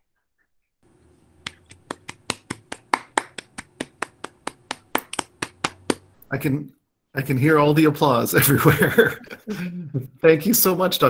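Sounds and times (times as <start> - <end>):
faint low hum: 0.8 - 11.0
person clapping hands: 1.4 - 6.1.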